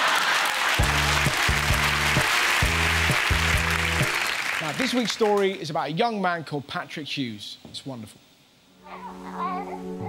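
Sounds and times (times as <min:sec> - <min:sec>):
high wavering voice-like sound: 0:08.8 - 0:10.0
soft background music: 0:08.8 - 0:10.0.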